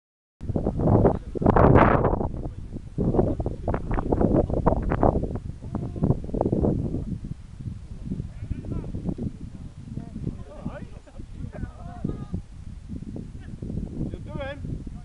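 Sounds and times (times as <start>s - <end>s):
wind buffeting microphone: 0.4s - 15.0s.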